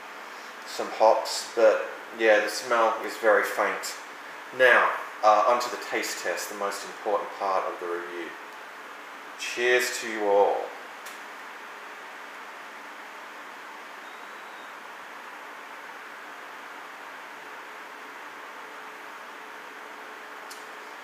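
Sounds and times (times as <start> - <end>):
room noise hiss: 0.0 - 21.0.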